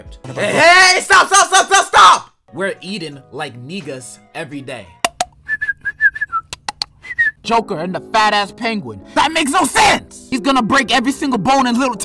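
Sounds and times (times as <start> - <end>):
person whistling short notes: 5.4 - 7.4.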